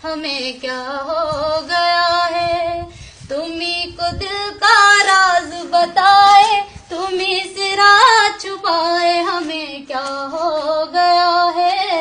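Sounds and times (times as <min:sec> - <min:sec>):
woman breathing: 0:02.8 - 0:03.3.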